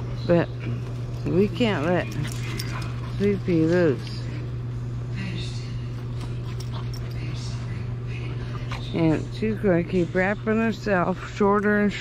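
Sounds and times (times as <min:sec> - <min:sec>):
dogs playing on dirt: 0:00.0 - 0:12.0
steady low hum: 0:00.0 - 0:12.0.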